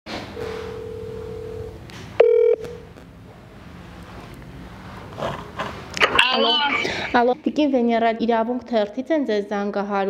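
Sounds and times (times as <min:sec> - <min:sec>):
telephone line beep: 0:00.4 - 0:02.7
telephone ringing tone: 0:00.4 - 0:02.7.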